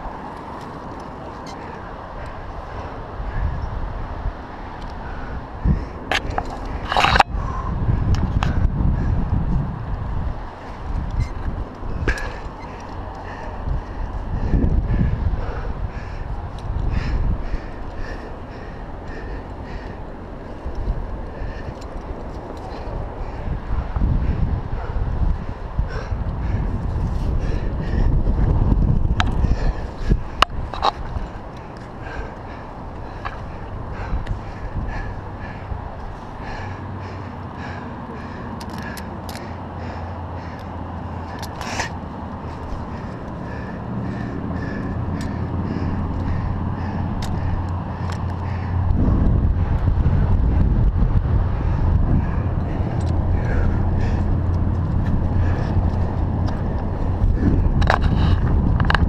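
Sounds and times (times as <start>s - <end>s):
wind buffeting microphone: 0.0s - 59.0s.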